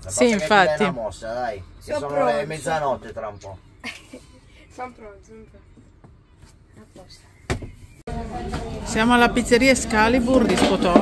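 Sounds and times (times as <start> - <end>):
sudden thump: 7.5 - 7.8
faint low voices: 8.1 - 11.0.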